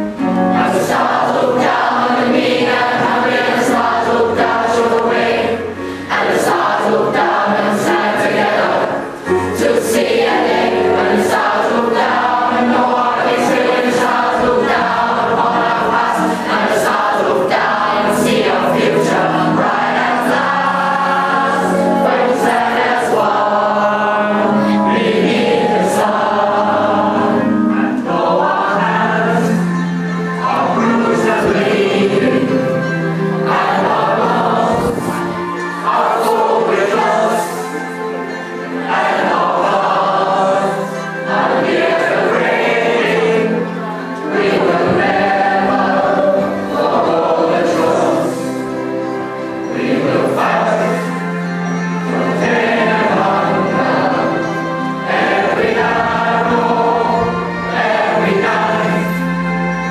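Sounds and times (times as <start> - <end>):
group of teenagers singing: 0.0 - 59.9.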